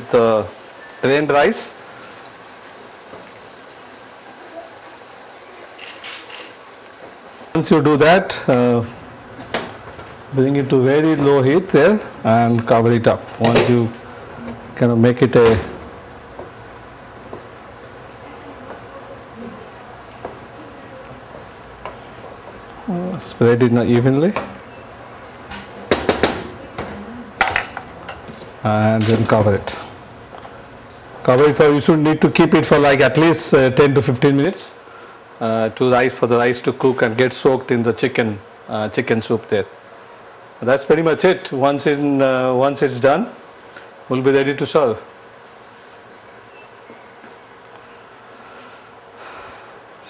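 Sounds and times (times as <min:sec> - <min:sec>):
steady low hiss: 0:00.0 - 0:50.0.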